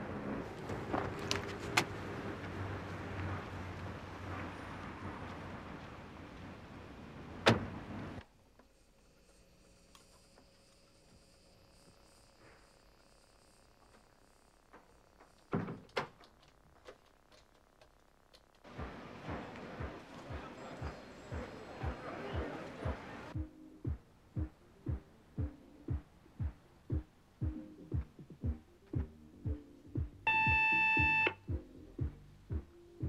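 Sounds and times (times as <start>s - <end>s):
wind: 0.0s - 33.0s
car door shutting: 7.4s - 8.2s
small clicks: 14.7s - 18.7s.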